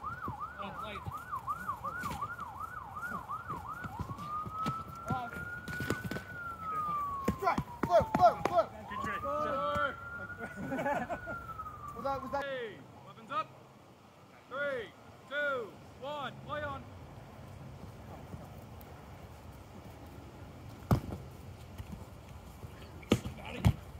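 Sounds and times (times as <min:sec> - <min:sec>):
emergency vehicle siren: 0:00.0 - 0:12.4.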